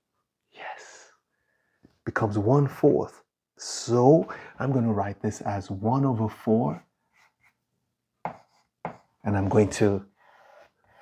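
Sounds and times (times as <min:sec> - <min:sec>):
faint chalk rubs: 0:06.2 - 0:11.0
chalk strokes on blackboard: 0:06.6 - 0:07.6, 0:08.2 - 0:11.0.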